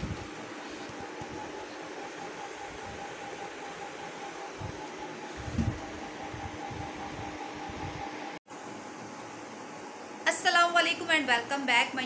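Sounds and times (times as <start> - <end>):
appliance whirring: 0.0 - 9.9.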